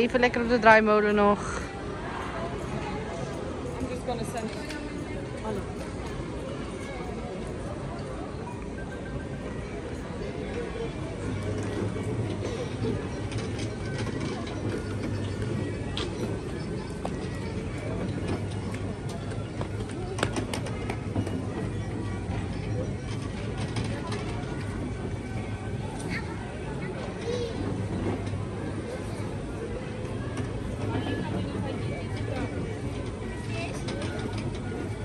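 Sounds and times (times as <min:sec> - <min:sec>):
carousel motor hum: 0:00.0 - 0:35.0.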